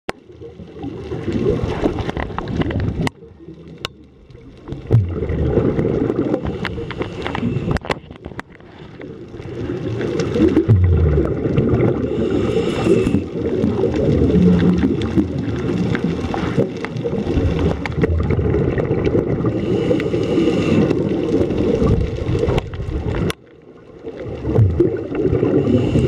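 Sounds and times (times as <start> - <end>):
exhaled bubbles rushing underwater: 0.1 - 26.0.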